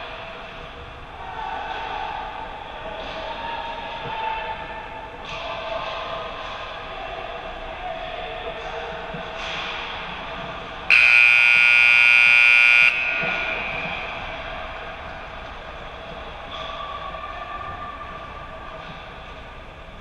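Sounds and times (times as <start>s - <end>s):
scoreboard buzzer: 10.9s - 13.2s.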